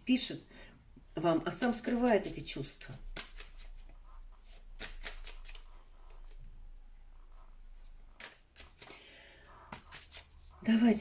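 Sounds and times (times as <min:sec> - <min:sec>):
cards clicking and rustling: 0:03.1 - 0:03.8, 0:04.4 - 0:06.4, 0:08.1 - 0:09.0.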